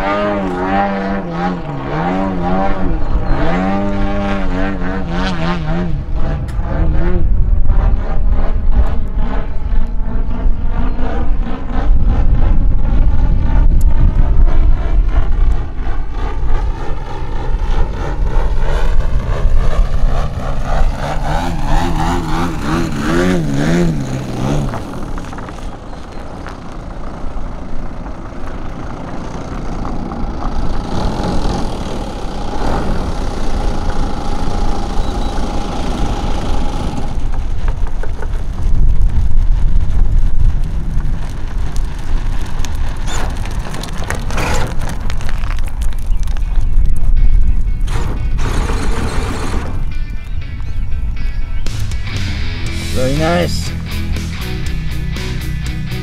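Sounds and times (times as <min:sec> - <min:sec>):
wind rumble on microphone: 0:00.0 - 0:52.2
model plane engine: 0:15.3 - 0:37.6.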